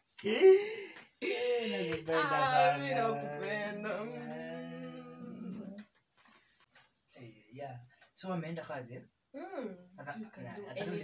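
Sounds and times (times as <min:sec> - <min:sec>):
person singing or moaning: 0:00.2 - 0:05.8.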